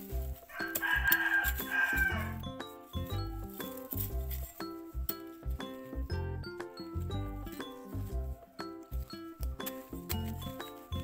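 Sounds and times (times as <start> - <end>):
background music with beat: 0.0 - 11.0
rooster crowing: 0.5 - 2.4.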